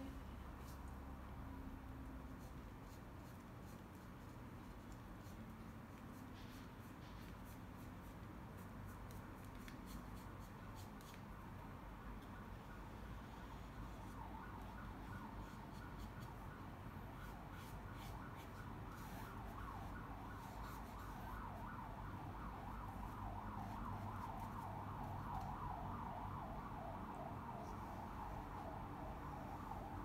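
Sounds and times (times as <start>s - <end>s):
faint wailing siren: 11.1s - 30.0s.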